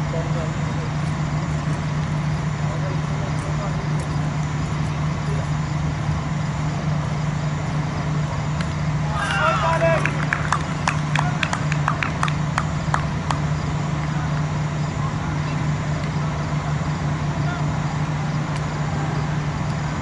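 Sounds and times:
steady low hum: 0.0 - 20.0
sharp hand claps: 9.9 - 14.4.

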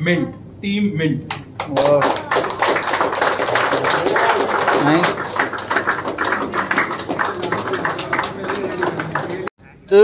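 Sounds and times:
people clapping: 1.3 - 9.5.

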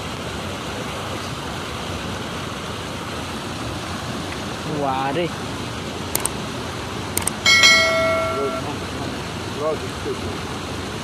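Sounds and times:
bright bell chime: 7.4 - 8.8.

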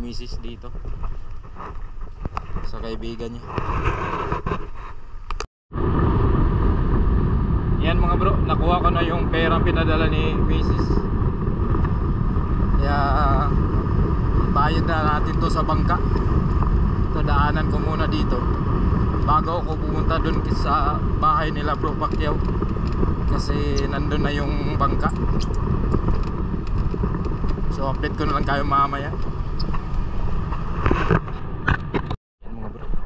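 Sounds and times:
wind buffeting microphone: 0.0 - 4.6, 5.3 - 33.0
road noise: 0.0 - 32.2
motorcycle engine rumble: 5.8 - 33.0.

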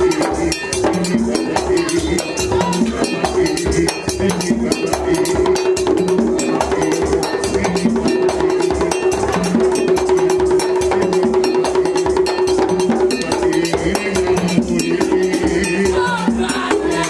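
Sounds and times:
drums beating fast rhythm: 0.0 - 17.0.

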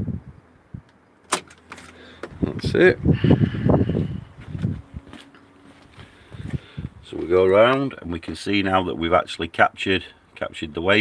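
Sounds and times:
footsteps walking: 3.9 - 8.6.

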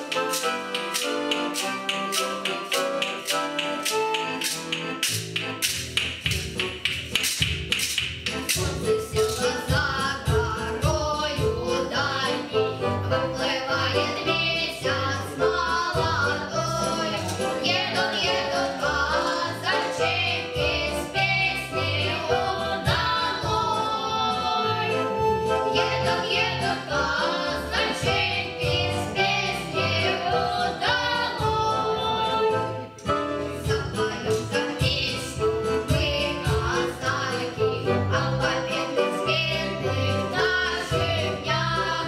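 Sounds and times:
wooden percussion clacks: 0.0 - 10.1
accordion playing folk song: 0.0 - 42.0
boys singing together: 9.1 - 25.1, 25.7 - 32.5, 33.7 - 42.0.

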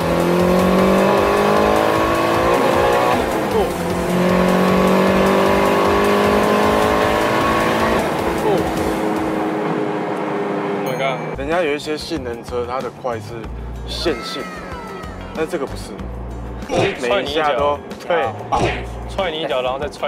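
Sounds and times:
turbocharged car engine accelerating: 0.0 - 10.9.

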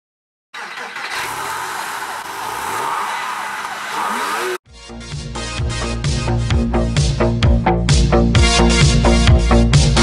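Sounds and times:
car engine revving: 0.6 - 4.6
road and wind noise: 0.6 - 4.6.

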